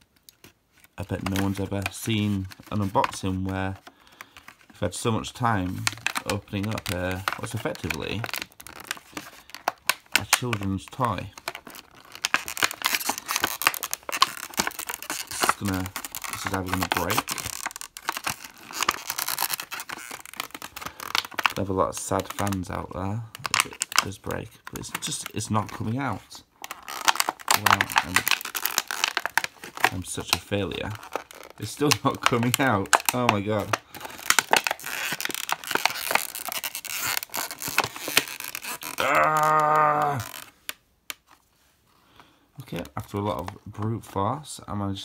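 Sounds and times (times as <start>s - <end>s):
plastic packaging crinkling: 0.0s - 41.4s
plastic clicks and snaps: 26.6s - 41.4s
man grunting with effort: 39.0s - 40.3s.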